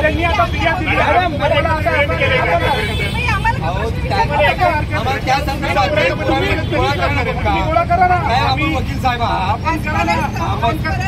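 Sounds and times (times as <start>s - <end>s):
low rumble of street noise: 0.0s - 11.0s
people arguing: 0.0s - 11.0s.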